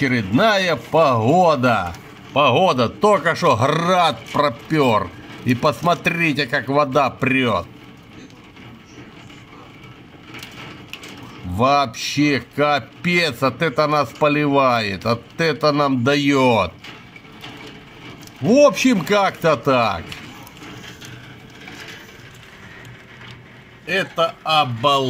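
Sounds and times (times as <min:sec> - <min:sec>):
heavy rain on puddles: 0:00.0 - 0:25.0.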